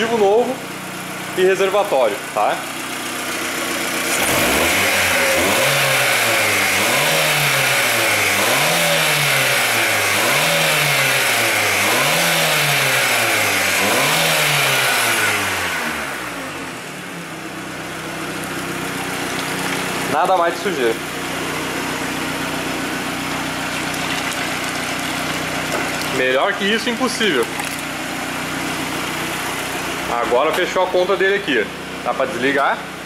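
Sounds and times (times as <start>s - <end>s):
car engine revving: 0.8s - 33.0s.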